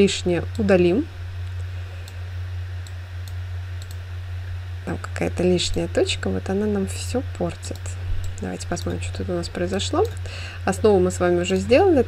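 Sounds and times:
steady low hum: 0:00.0 - 0:12.0
computer mouse clicks: 0:02.8 - 0:04.0, 0:07.7 - 0:09.0.

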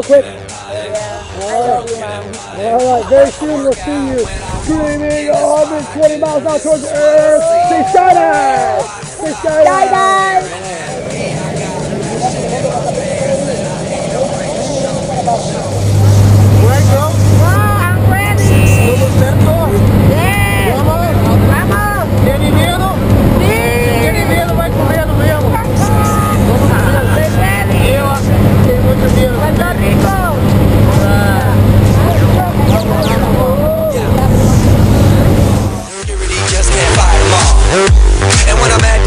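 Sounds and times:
people talking and calling: 0:00.0 - 0:39.0
airplane engine drone: 0:09.4 - 0:35.9.

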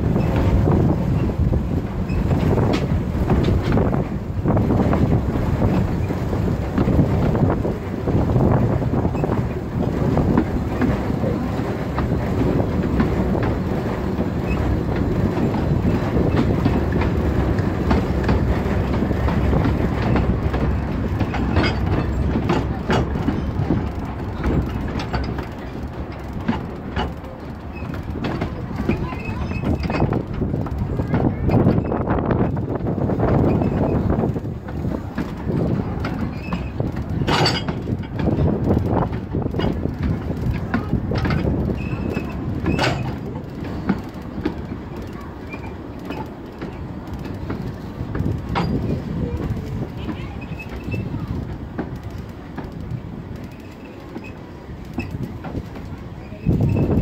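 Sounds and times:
train wheels rumbling on track: 0:00.0 - 0:57.0
clicks from rail joints: 0:00.1 - 0:57.0.

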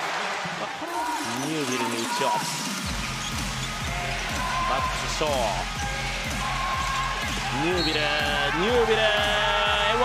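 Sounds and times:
sneaker squeaks: 0:01.4 - 0:05.0
music with bass beat: 0:02.9 - 0:10.0.

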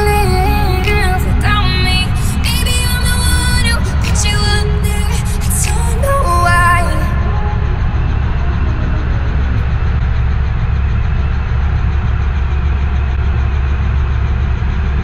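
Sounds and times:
helicopter engine and rotor rumble: 0:07.2 - 0:15.0.

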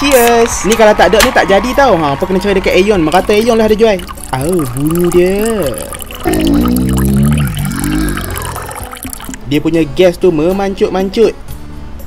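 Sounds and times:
soft drink pouring into glass: 0:03.1 - 0:09.5
fizz crackling: 0:03.2 - 0:09.5.

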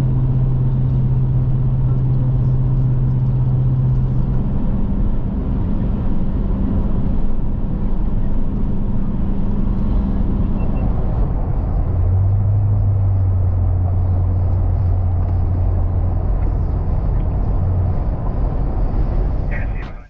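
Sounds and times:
car engine and road noise: 0:00.0 - 0:20.0.

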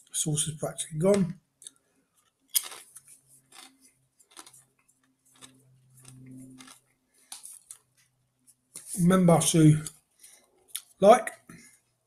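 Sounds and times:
crunchy chip chewing: 0:01.6 - 0:07.9.

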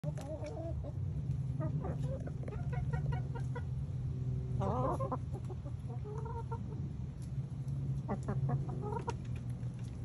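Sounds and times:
hens clucking: 0:00.0 - 0:10.0
steady low hum: 0:00.0 - 0:10.0.

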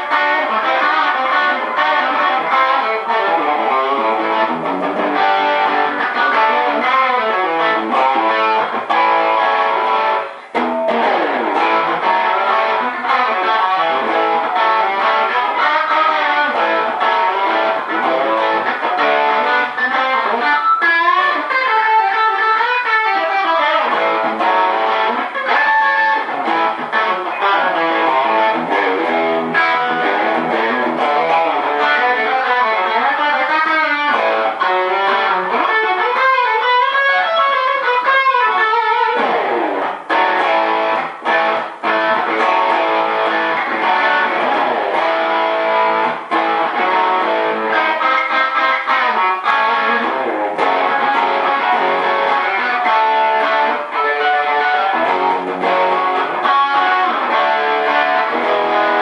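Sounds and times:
overdriven electric guitar: 0:00.0 - 0:59.0.

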